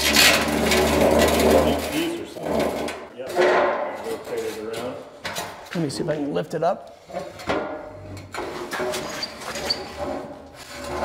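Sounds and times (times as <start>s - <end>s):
metal frame clanking and scraping: 0.0s - 5.7s, 7.0s - 11.0s.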